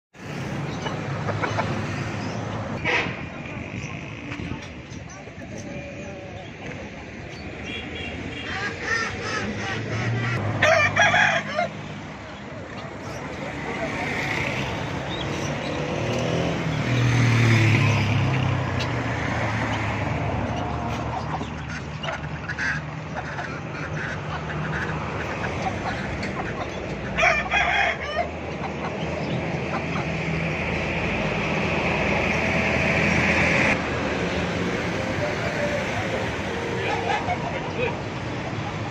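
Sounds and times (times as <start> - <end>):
fowl calling: 8.0 - 11.7
rooster crowing: 10.6 - 12.0, 27.2 - 28.3.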